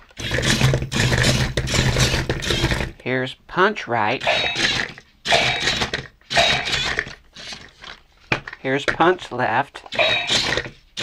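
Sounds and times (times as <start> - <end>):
toy robot motor whirring: 0.0 - 2.9, 4.2 - 7.9, 9.9 - 11.0.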